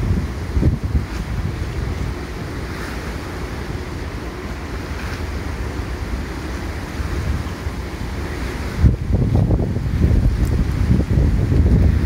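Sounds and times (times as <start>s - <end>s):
water rushing over weir: 0.0s - 12.0s
wind buffeting microphone: 0.0s - 12.0s.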